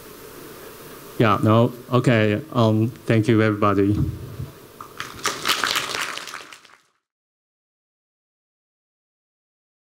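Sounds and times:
audience applauding: 0:04.8 - 0:07.0.

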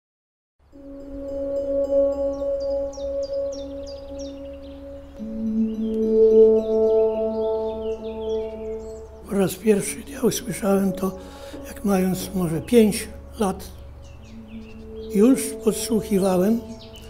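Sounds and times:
ambient music drone chord: 0:00.6 - 0:17.0.

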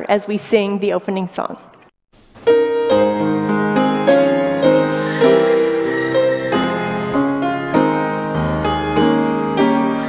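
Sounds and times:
slow gentle piano: 0:02.5 - 0:10.0.

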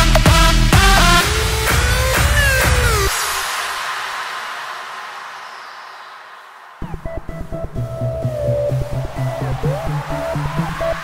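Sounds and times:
hissing noise sweep: 0:01.2 - 0:11.0.

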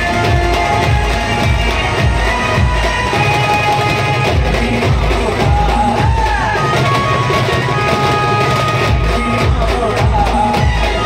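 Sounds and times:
loud live band music: 0:00.0 - 0:11.0.

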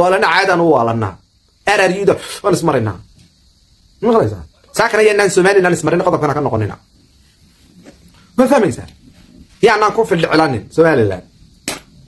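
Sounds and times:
man talking: 0:04.0 - 0:06.8, 0:08.4 - 0:09.0, 0:09.6 - 0:11.3
sharp click: 0:11.6 - 0:11.9.

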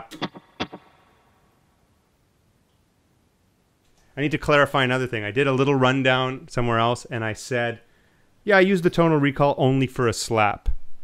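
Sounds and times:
electric guitar notes with echo: 0:00.0 - 0:01.2.

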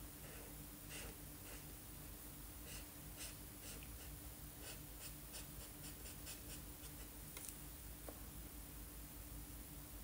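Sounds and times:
steady low hum: 0:00.0 - 0:10.0
marker scratching on paper: 0:02.6 - 0:07.2.

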